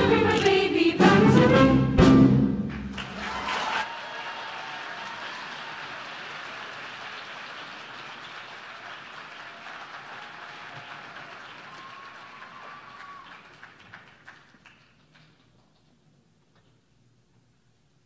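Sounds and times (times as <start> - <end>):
audience applause: 2.7 - 15.7.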